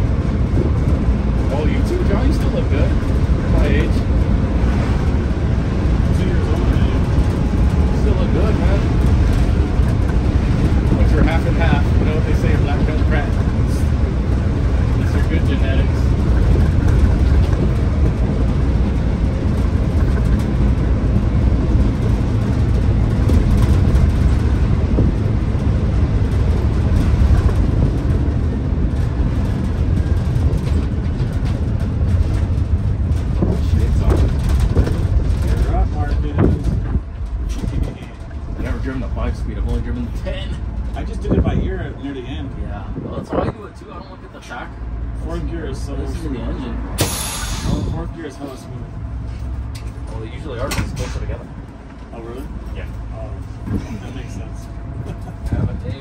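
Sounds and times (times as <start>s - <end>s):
bus diesel engine drone: 0.0s - 56.0s
road noise: 0.0s - 56.0s.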